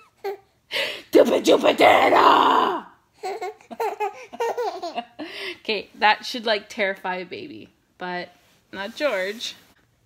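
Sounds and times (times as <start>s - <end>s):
baby laughing: 0.0s - 0.5s, 3.2s - 5.3s.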